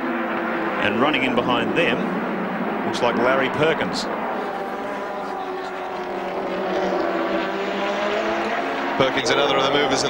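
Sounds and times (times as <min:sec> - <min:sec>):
racing car engine running hard: 0:00.0 - 0:10.0.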